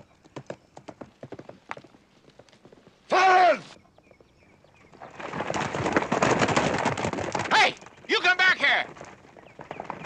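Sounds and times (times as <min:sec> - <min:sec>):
horse hooves galloping: 0:00.0 - 0:10.0.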